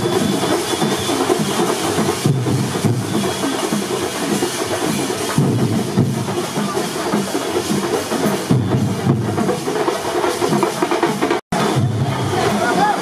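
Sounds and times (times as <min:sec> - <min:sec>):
crowd din: 0:00.0 - 0:13.0
procession music with percussion: 0:00.0 - 0:13.0.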